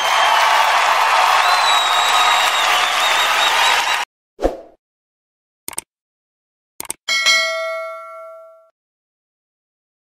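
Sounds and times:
bright metallic bell ding: 7.1 - 8.7.

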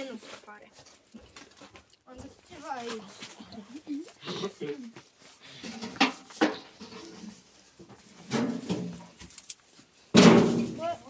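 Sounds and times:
sharp knocks or clatters: 10.1 - 10.8.

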